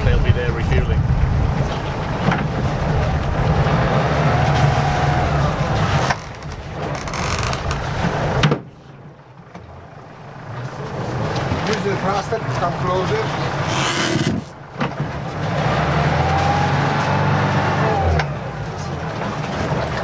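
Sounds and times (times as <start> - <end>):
wind noise on microphone: 0.0 - 3.9
diesel engine running: 0.0 - 20.0.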